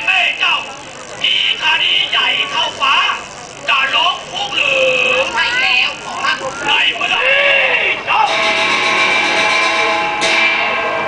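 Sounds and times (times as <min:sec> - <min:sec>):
ringing percussion crash: 0:08.3 - 0:11.0.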